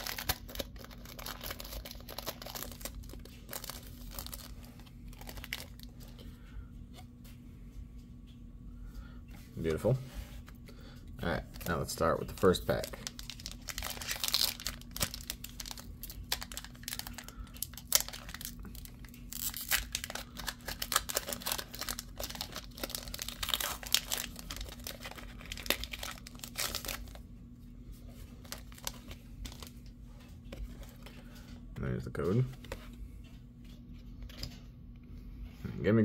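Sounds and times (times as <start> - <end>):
foil wrapper tearing and crinkling: 0.0 - 5.9, 12.4 - 27.2.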